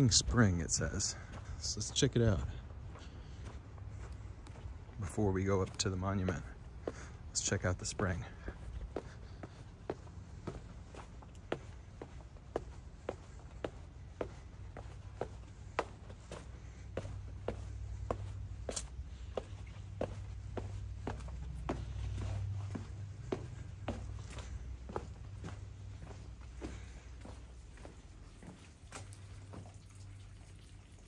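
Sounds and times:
footsteps on stone steps: 0:00.0 - 0:29.7.

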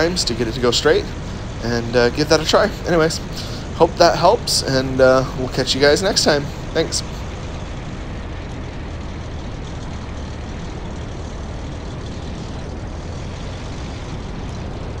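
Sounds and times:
airplane engine idling: 0:00.0 - 0:15.0
wheels rolling on runway: 0:00.0 - 0:15.0
wind rushing: 0:00.0 - 0:15.0.

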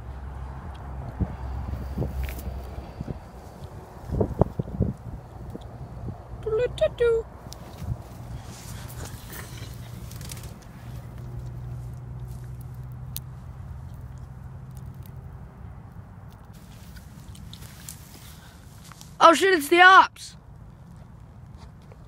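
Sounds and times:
vehicle engine hum: 0:00.0 - 0:19.3
brush and twigs crackling: 0:02.0 - 0:05.9, 0:07.4 - 0:19.2.

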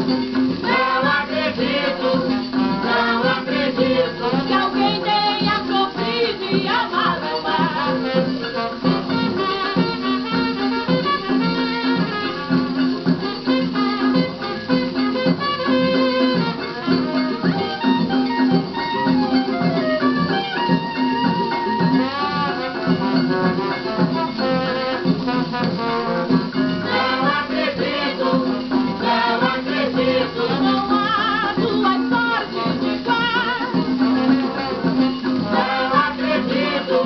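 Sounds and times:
samba on an old record: 0:00.0 - 0:37.0.

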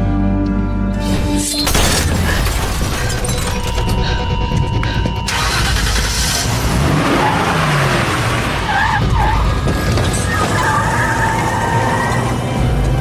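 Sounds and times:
car tyres skidding and squealing: 0:05.3 - 0:12.7.

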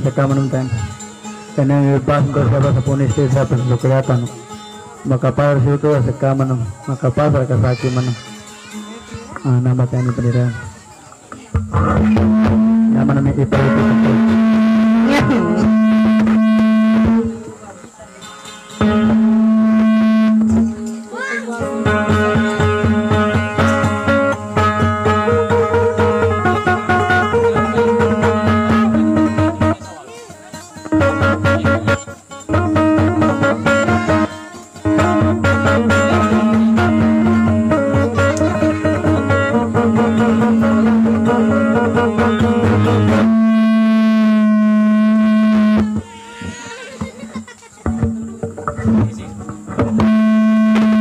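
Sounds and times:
held musical note: 0:12.0 - 0:46.1, 0:49.9 - 0:51.0.

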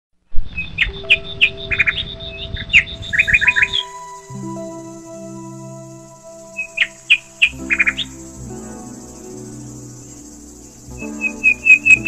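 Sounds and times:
songbird chirping: 0:00.3 - 0:12.0
soft music with held notes: 0:00.6 - 0:12.0.

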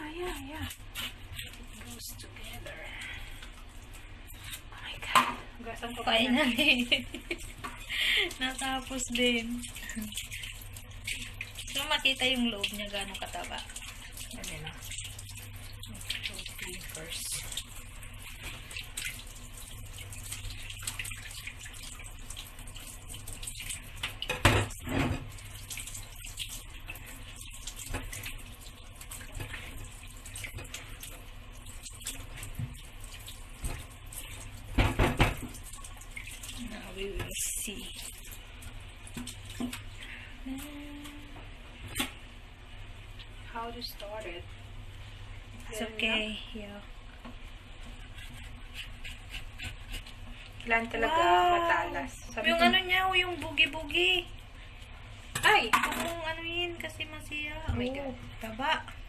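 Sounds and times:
fish rubbed by hand: 0:47.8 - 0:50.5.

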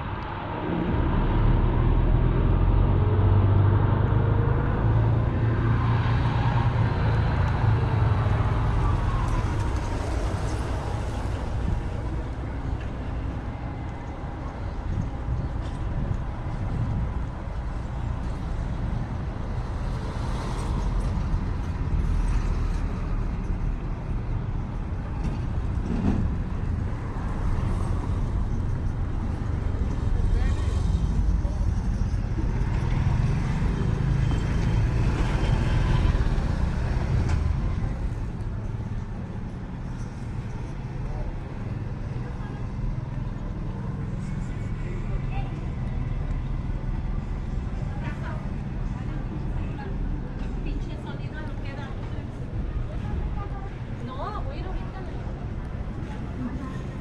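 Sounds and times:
traffic passing close by: 0:00.0 - 0:57.0.

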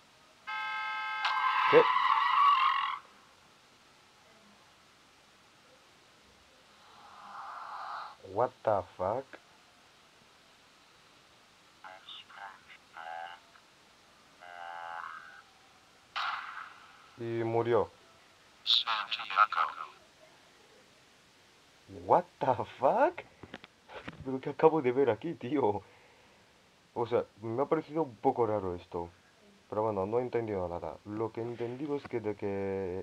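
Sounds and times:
buzzy pitched cartoon sound: 0:01.2 - 0:03.1, 0:14.4 - 0:15.4
sudden hit: 0:16.2 - 0:16.7.

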